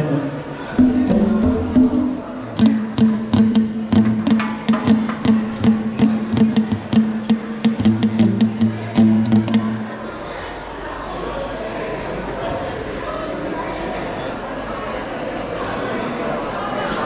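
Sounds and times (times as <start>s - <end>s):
deeper note: 0.7s - 10.1s
held low note: 0.7s - 10.1s
hand percussion hits: 0.8s - 9.7s.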